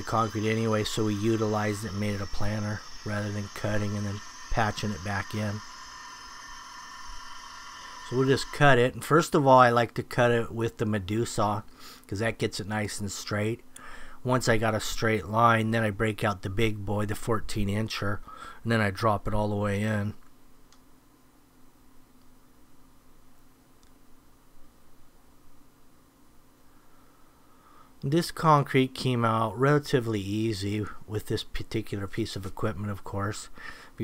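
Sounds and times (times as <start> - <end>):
concrete saw cutting: 0.0 - 8.9
shop vacuum hissing: 0.0 - 9.6
low steady hum: 0.0 - 34.0
faint click: 20.2 - 20.9, 23.8 - 24.0.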